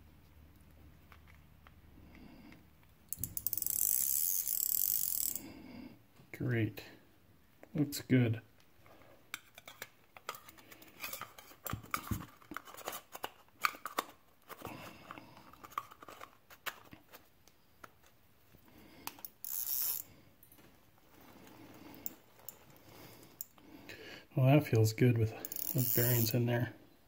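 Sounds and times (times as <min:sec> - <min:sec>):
fishing reel parts clicking: 0:03.1 - 0:05.4, 0:19.0 - 0:20.1, 0:25.4 - 0:26.4.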